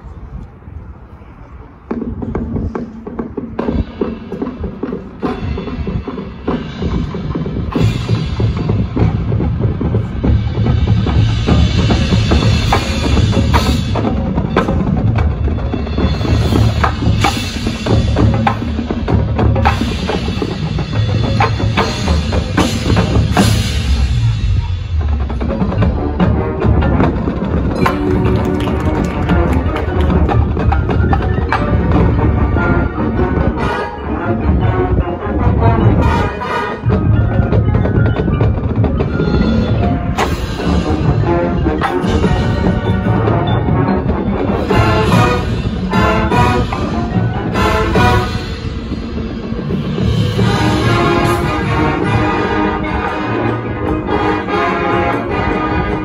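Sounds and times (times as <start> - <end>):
marching band winds: 0.0 - 56.0
sharp percussion strikes: 3.7 - 32.4.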